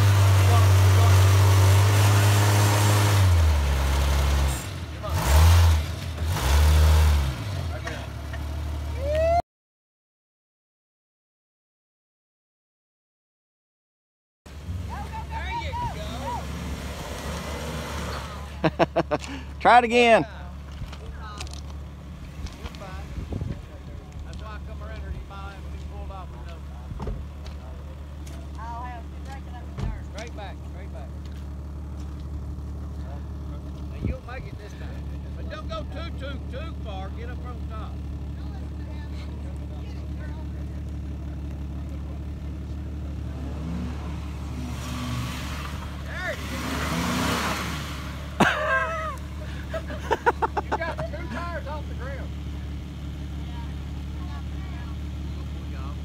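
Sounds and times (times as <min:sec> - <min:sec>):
car engine running: 0:14.5 - 0:56.0
voices in background: 0:32.8 - 0:44.0, 0:50.7 - 0:56.0.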